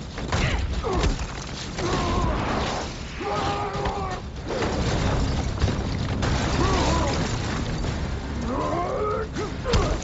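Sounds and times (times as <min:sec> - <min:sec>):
rumble of breaking pavement and debris: 0:00.0 - 0:10.0.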